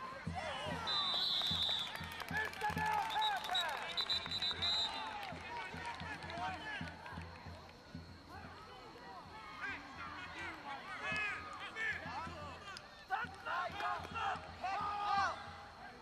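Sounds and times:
overlapping voices calling and talking: 0.0s - 16.0s.

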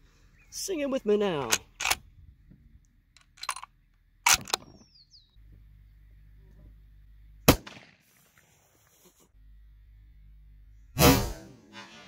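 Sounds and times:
rifle bolt metallic clicks: 1.4s - 2.1s, 3.2s - 4.8s.

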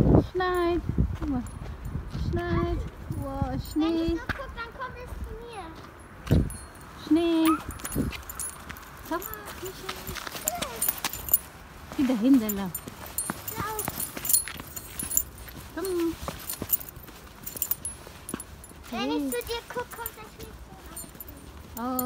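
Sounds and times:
footsteps on snow: 7.5s - 22.0s.

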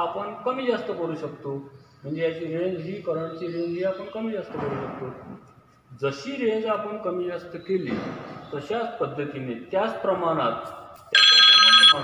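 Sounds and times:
electronic multi-tone beep: 11.2s - 12.0s
man speaking: 11.8s - 12.0s.

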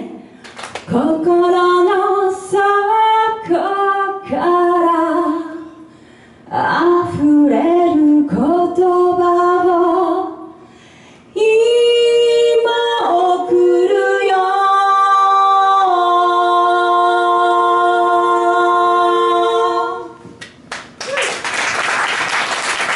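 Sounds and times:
applause: 0.4s - 0.9s, 20.4s - 22.9s
women singing in harmony: 0.9s - 5.7s, 6.5s - 10.5s, 11.4s - 20.3s.

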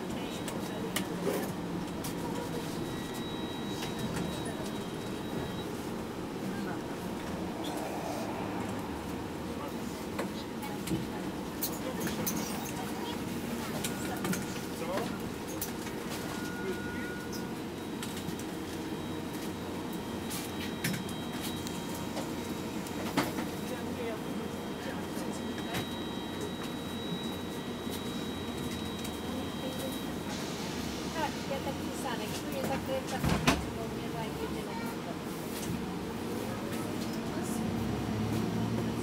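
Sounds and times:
bus engine hum: 0.0s - 25.6s, 26.2s - 39.0s
faint high whine: 4.4s - 11.0s.

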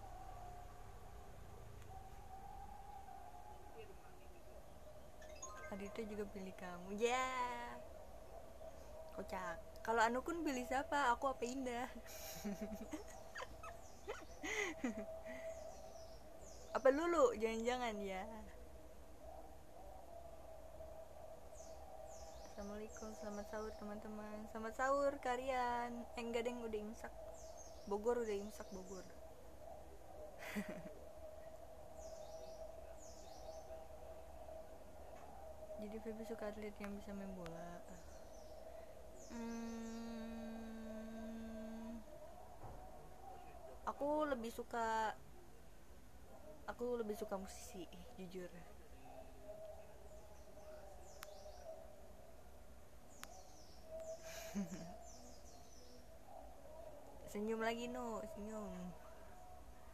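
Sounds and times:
faint steady hum: 0.0s - 59.9s
young woman giggling: 12.0s - 15.5s, 30.4s - 31.0s, 54.2s - 55.1s
breathy burst of laughter: 12.0s - 15.6s, 30.4s - 31.0s, 54.2s - 55.0s
woman humming: 39.3s - 42.1s, 54.2s - 55.0s.

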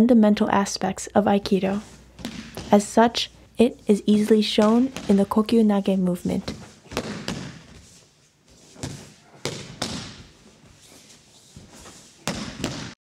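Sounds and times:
feet shuffling: 1.5s - 12.4s
bodies thudding on a mat: 6.4s - 7.8s, 8.7s - 10.7s, 11.6s - 12.9s.

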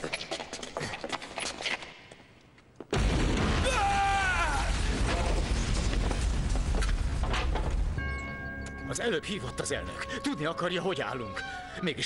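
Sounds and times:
crackling debris: 2.9s - 8.0s
explosion rumble: 3.0s - 8.0s.

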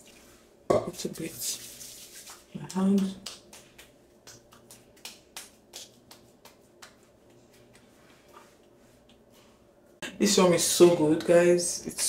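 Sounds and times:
hands slapping skin: 2.1s - 8.0s.

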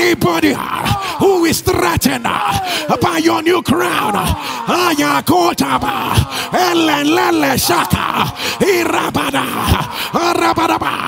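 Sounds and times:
man crying out in prayer: 0.0s - 11.0s.

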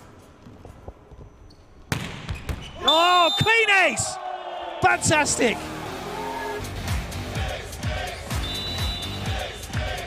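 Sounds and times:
arena hall noise: 0.0s - 10.0s
volleyball smack: 1.9s - 2.7s.

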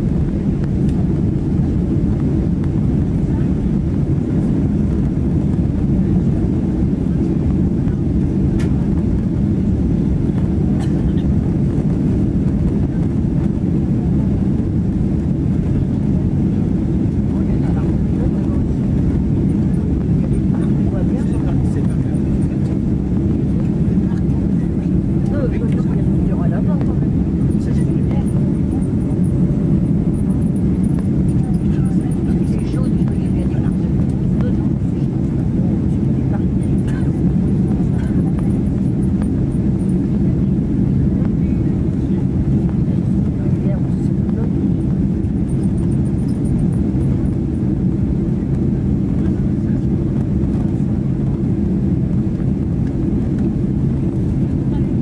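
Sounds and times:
airliner cabin roar: 0.0s - 55.0s.

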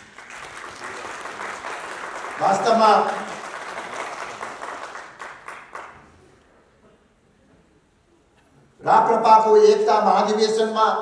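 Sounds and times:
audience applause: 0.0s - 6.2s.

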